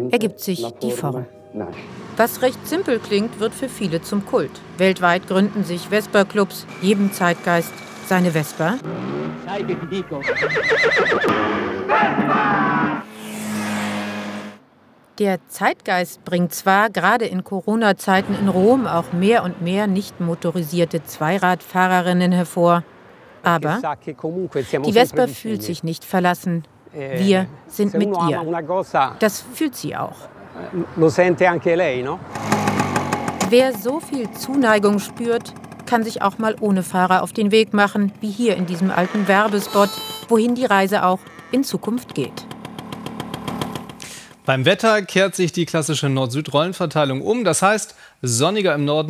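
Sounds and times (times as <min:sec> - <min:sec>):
man speaking: 0:00.0 - 0:01.8, 0:09.5 - 0:10.4, 0:23.6 - 0:25.8, 0:26.9 - 0:29.2, 0:44.5 - 0:49.0
scooter two-stroke engine running: 0:01.8 - 0:09.4, 0:32.4 - 0:44.0
horse whinny: 0:08.9 - 0:13.0, 0:38.7 - 0:40.4, 0:41.0 - 0:41.7.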